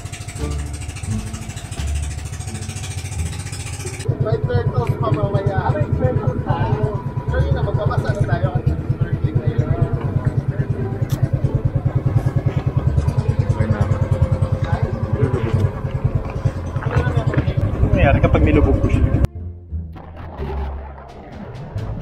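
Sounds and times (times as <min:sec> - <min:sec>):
boat engine throbbing: 0:00.0 - 0:22.0
faint voices: 0:04.0 - 0:19.3.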